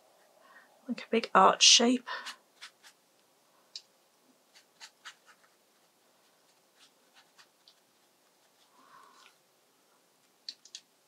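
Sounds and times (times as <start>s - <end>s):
sharp clicks: 10.4s - 10.9s.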